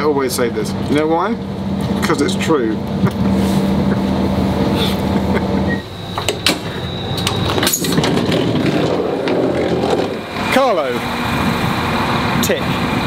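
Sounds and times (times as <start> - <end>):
train cabin running hum: 0.0 - 13.0
low drone: 2.3 - 13.0.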